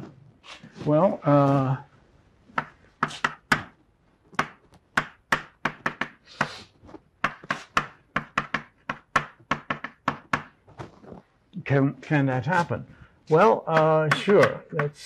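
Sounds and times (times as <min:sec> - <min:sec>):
chalk tapping on blackboard: 0:02.6 - 0:03.7, 0:04.4 - 0:06.6, 0:07.2 - 0:10.6.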